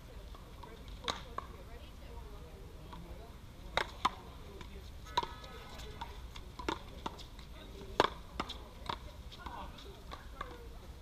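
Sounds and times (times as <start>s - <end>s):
ball striking concrete wall: 7.8s - 10.7s.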